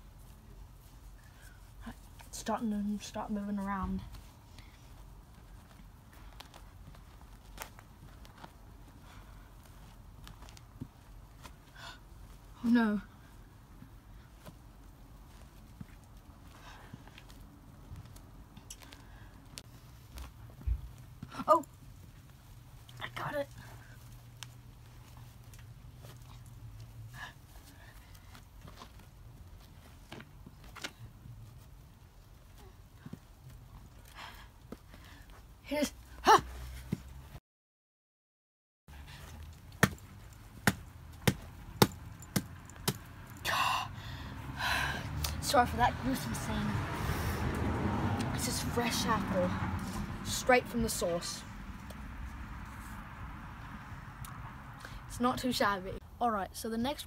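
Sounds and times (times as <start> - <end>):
rock striking an apple: 39.8 - 40.0.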